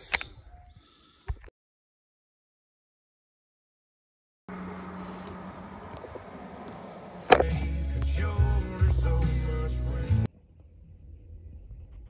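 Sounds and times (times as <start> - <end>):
low hum: 4.5 - 12.0
outdoor background rumble: 4.5 - 12.0.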